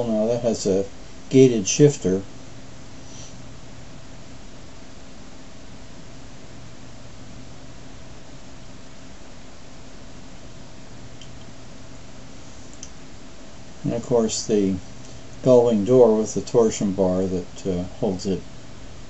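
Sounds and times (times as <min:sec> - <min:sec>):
steady low hum: 0:00.0 - 0:19.0
faint clicks: 0:12.7 - 0:13.0.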